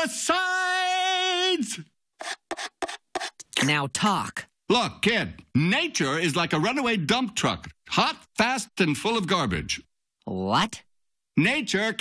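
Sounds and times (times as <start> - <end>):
person shouting: 0.0 - 1.8
spoon scraping plastic cup: 2.2 - 3.5.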